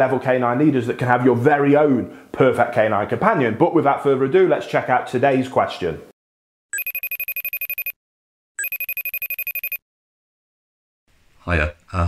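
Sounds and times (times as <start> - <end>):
phone ringtone trilling: 6.7 - 8.0, 8.6 - 9.8.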